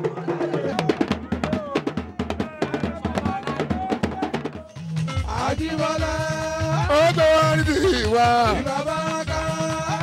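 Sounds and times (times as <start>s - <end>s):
talking drums and hand drums: 0.0s - 10.0s.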